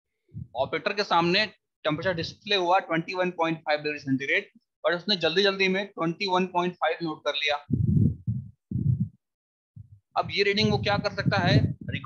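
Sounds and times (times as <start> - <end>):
low muffled bumps: 7.7 - 9.2, 9.8 - 12.0.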